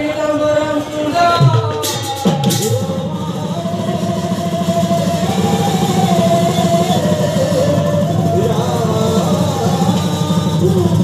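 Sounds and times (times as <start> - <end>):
drums beaten in fast rhythm: 0.0 - 11.0
cymbals: 0.7 - 11.0
wavering melody line: 2.7 - 11.0.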